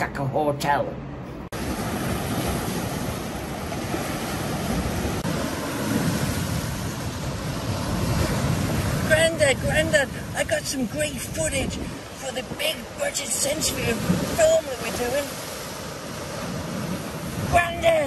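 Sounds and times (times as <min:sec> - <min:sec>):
wind rumbling on microphone: 0:01.5 - 0:18.0
waves breaking on rocky shore: 0:01.6 - 0:18.0.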